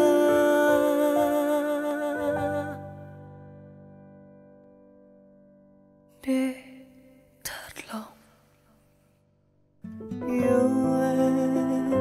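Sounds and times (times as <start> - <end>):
breathy whisper-like voice: 7.4 - 8.4.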